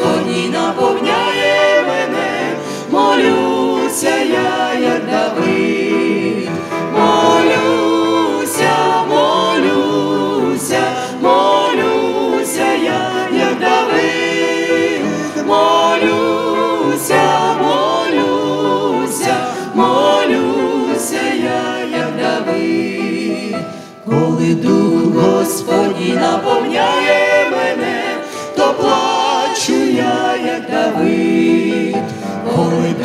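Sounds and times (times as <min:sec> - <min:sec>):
group singing a hymn: 0:00.0 - 0:33.0
keyboard and guitar accompaniment: 0:04.6 - 0:21.4.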